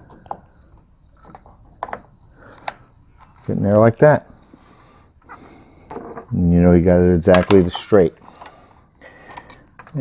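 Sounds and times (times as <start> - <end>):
small knocks: 0.0 - 3.4
faint clicks and scraping: 7.3 - 10.0.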